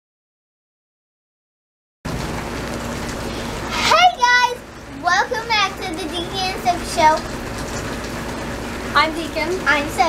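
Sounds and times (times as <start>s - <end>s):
rain hiss: 2.1s - 10.0s
children talking: 3.7s - 7.8s, 8.9s - 10.0s.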